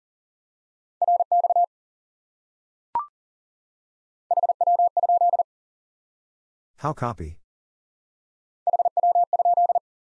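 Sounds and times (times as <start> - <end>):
morse code sine tone: 4.3 - 5.4, 8.7 - 9.8.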